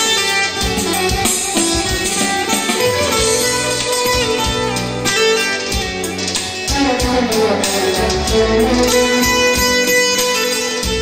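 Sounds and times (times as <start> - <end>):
electronic keyboard: 0.0 - 11.0
saz plucked and strummed: 0.0 - 11.0.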